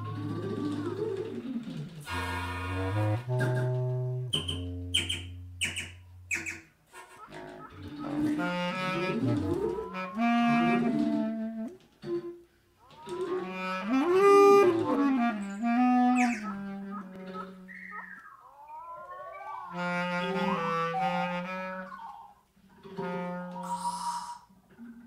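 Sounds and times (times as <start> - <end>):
bass clarinet playing: 2.0 - 6.4, 7.0 - 11.8, 12.9 - 22.2, 22.9 - 24.5
high whistled glides: 15.4 - 21.4.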